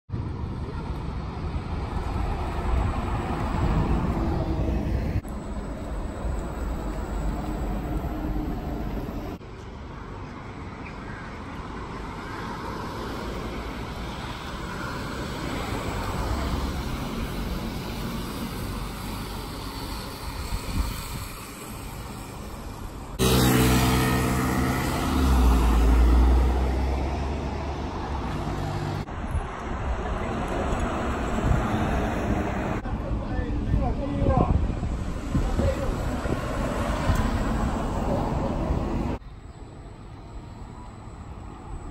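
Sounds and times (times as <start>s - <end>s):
bus tyre and road noise: 0.1s - 41.9s.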